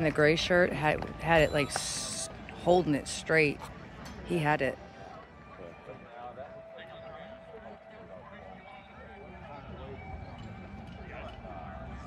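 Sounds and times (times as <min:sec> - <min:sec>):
distant crowd murmur: 0:00.0 - 0:12.0.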